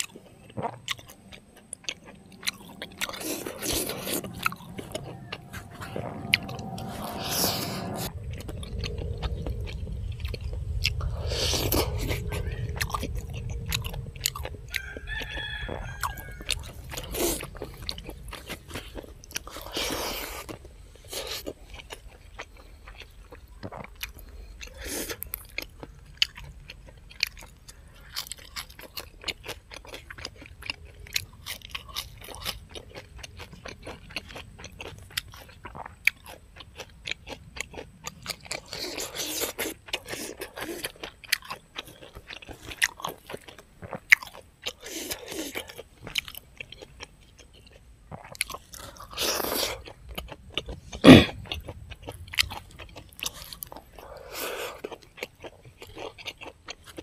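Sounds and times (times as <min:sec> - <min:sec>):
man chewing and crunching food: 0:00.0 - 0:57.0.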